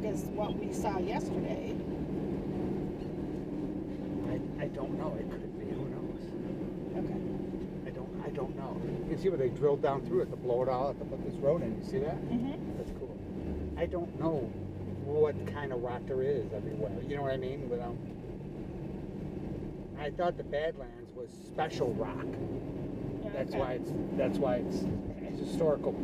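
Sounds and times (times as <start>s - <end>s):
car road and engine noise: 0.0s - 26.0s.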